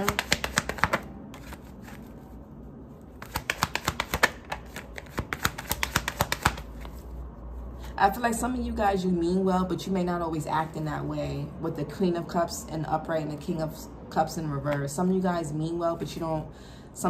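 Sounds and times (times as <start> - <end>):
cards being shuffled: 0.0 - 7.2.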